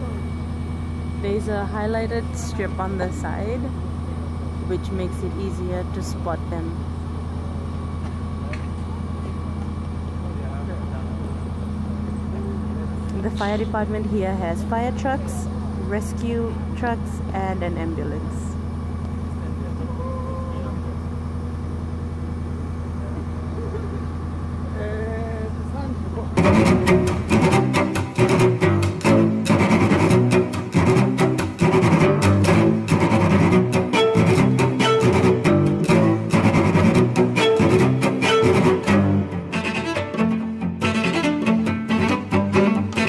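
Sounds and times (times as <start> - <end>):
fire truck engine idling: 0.0 - 26.4
faint voices: 19.3 - 21.1
rhythmic background music: 26.4 - 43.0.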